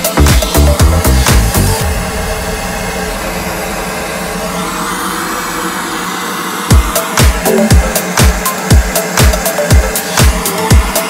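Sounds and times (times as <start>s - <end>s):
blowtorch hissing: 0.0s - 11.0s.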